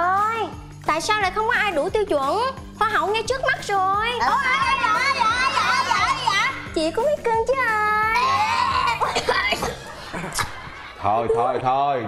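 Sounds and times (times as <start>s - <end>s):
soft background music: 0.0s - 12.0s
children calling out together: 4.2s - 6.6s.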